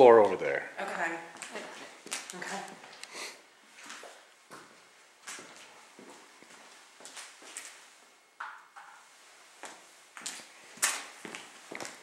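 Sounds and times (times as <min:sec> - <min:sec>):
footsteps on floor: 0:03.7 - 0:07.9, 0:09.6 - 0:12.0.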